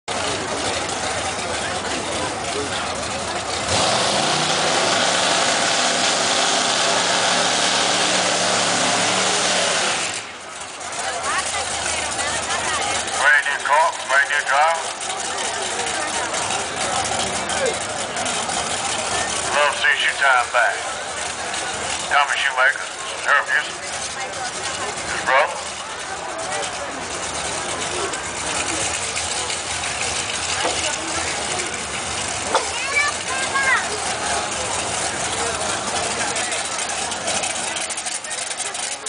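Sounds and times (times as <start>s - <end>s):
racing car engine at high revs: 0.1s - 39.0s
spectators' voices: 0.1s - 39.0s
tyres spinning: 0.1s - 39.0s.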